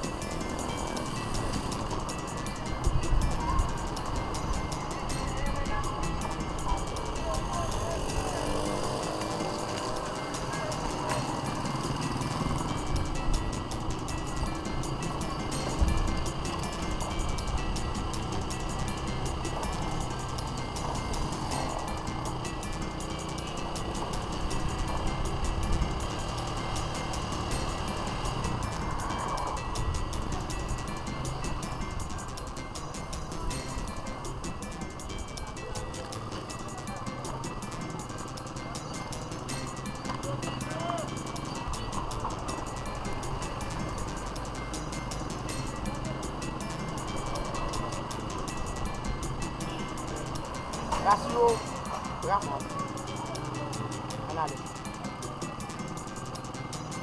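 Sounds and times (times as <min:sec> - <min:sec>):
music: 0:00.0 - 0:57.0
vehicle and road noise: 0:00.0 - 0:57.0
indistinct voices: 0:03.2 - 0:17.4.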